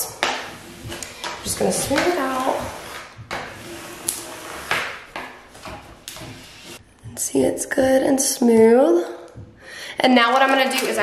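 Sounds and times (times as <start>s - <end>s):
plastic ruler scraping film: 0.2s - 6.8s.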